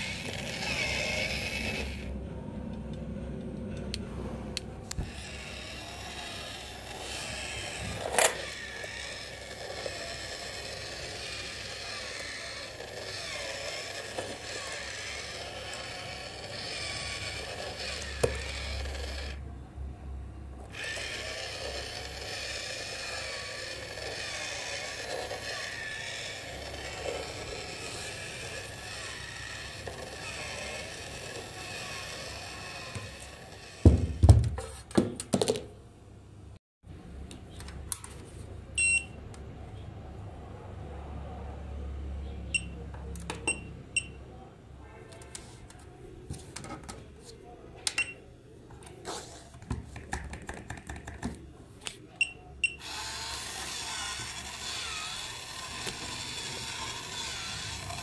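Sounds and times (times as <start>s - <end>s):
small motor and plastic gears: 0.0s - 2.2s, 4.9s - 19.4s, 20.6s - 34.4s, 52.6s - 58.0s.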